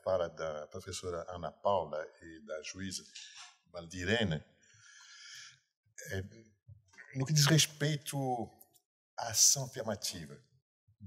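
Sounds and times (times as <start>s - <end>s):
man breathing: 4.6s - 5.7s.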